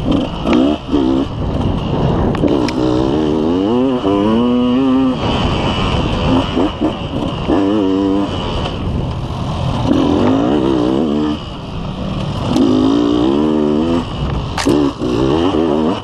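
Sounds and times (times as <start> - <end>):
dirt bike engine revving: 0.0 - 16.0
wind and riding noise: 0.0 - 16.0.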